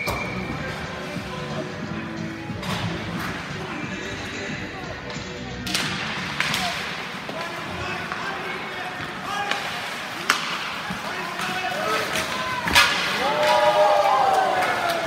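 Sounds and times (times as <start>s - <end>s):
hockey sticks and puck clacking: 0.0s - 15.0s.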